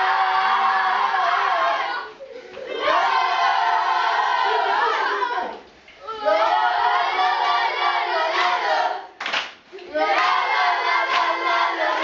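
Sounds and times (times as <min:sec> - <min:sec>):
boys cheering and shouting: 0:00.0 - 0:07.4.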